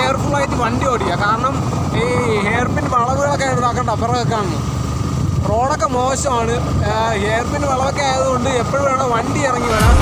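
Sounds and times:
motorcycle engine rumble: 0.0s - 10.0s
man talking: 5.5s - 10.0s.

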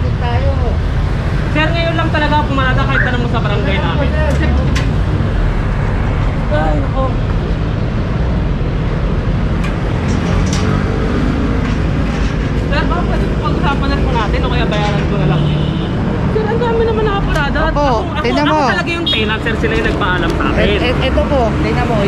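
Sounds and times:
voices talking: 0.0s - 7.9s, 12.6s - 22.0s
street traffic: 0.0s - 22.0s.

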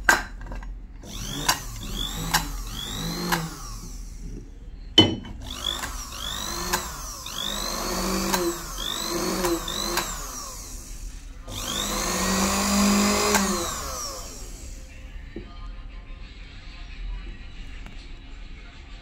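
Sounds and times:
sewing machine motor whining: 1.0s - 4.5s, 5.4s - 14.9s.

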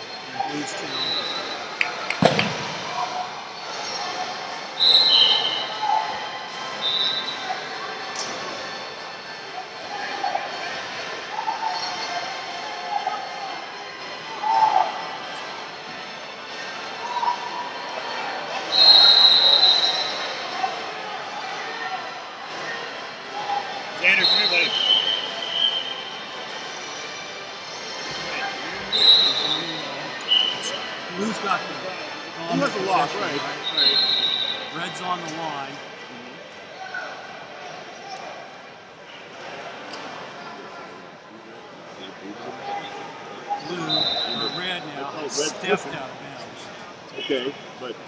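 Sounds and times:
indistinct voices and chatter: 0.0s - 48.0s
sharp knock: 2.1s - 2.9s.

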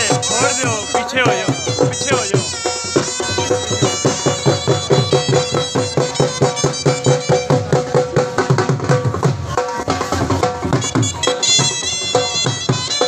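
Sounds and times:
reedy wind instrument melody: 0.0s - 8.4s, 10.6s - 13.0s
drums beating quick rhythm: 0.0s - 13.0s.

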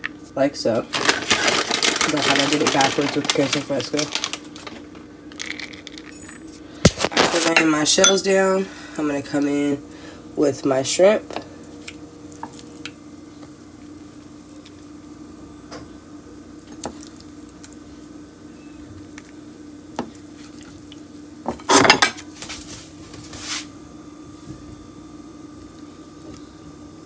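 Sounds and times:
low background hum: 0.0s - 27.0s.

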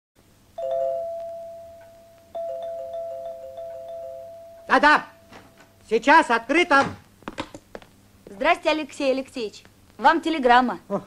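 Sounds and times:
two-tone doorbell chime: 0.6s - 5.8s.

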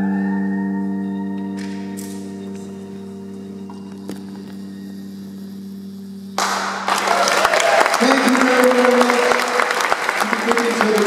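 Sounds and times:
lap steel guitar chord ringing: 0.0s - 6.9s
audience applause: 6.4s - 11.0s.

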